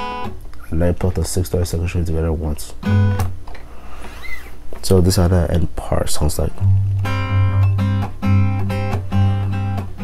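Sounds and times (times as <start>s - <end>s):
man speaking: 0.6s - 2.8s, 4.8s - 6.6s.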